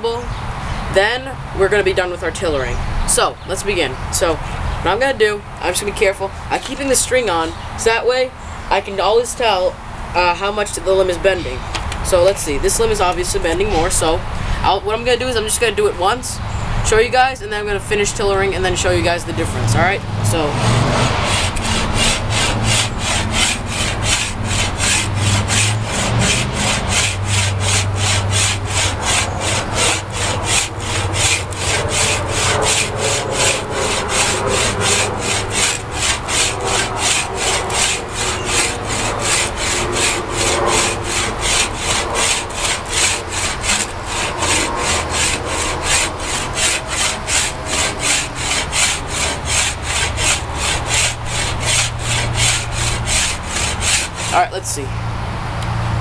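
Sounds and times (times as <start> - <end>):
wood rasp scraping wood: 6.5 - 8.1, 17.9 - 54.6.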